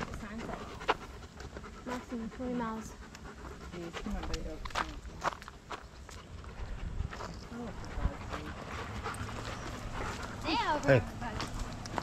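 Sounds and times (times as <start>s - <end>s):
dog panting: 0.0s - 12.0s
quiet talking: 0.0s - 12.0s.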